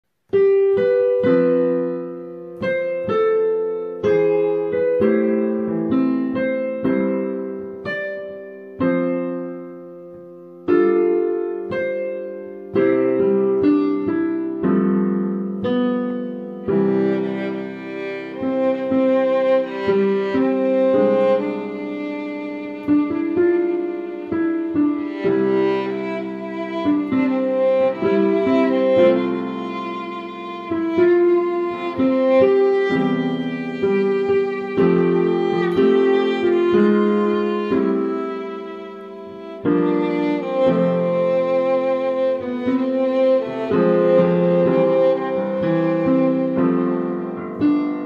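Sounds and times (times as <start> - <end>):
slow piano chords and melody: 0.1 - 48.0.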